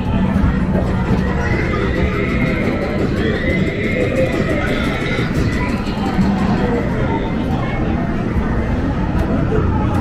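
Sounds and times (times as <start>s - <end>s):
arcade machines din: 0.0s - 10.0s.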